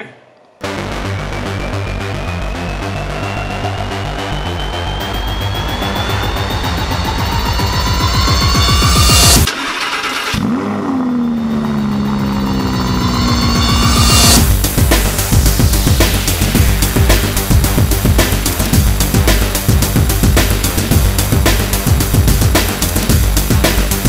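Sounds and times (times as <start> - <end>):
music with rising build-up: 0.5 - 9.5, 11.0 - 24.0
car engine starting and idling: 0.7 - 24.0.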